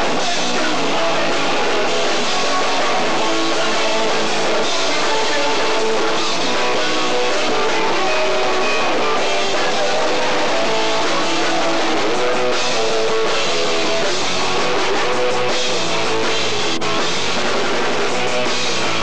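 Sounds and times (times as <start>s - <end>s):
electric guitar: 0.0s - 19.0s
punk rock band playing: 0.0s - 19.0s.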